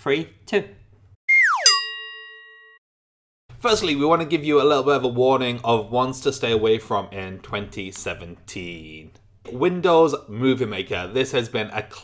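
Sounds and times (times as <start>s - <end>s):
electronic tone swooping downward: 1.3s - 2.1s
bright chime ringing: 1.3s - 2.8s.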